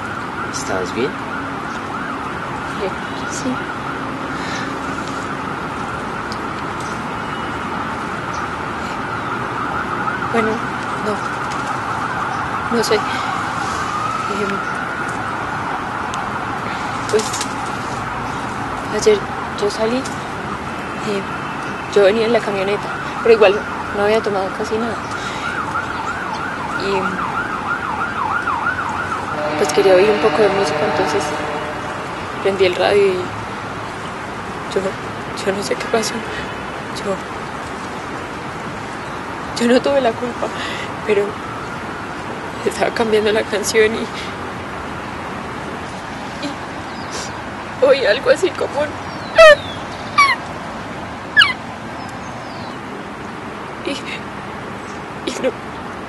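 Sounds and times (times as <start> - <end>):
siren wailing in fast yelp: 25.6 - 33.0, 51.3 - 51.6
woman imitating dog yelps: 49.4 - 50.4, 51.4 - 51.6.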